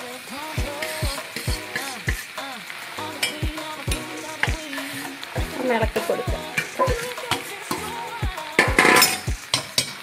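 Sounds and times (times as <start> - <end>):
background music with beat: 0.0 - 10.0
spoon scraping iron pot: 8.7 - 10.0.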